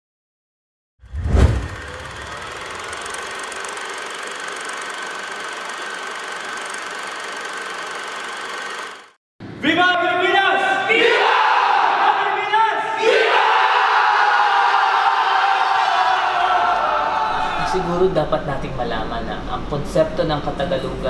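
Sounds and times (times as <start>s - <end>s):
men shouting: 10.3s - 18.0s.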